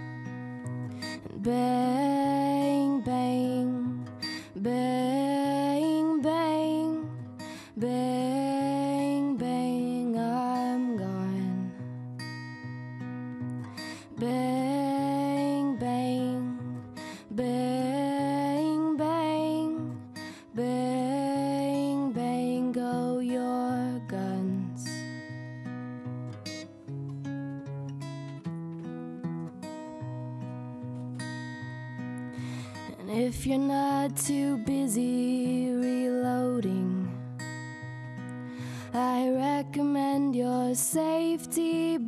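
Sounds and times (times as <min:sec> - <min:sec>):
acoustic guitar strumming: 0:00.0 - 0:42.0.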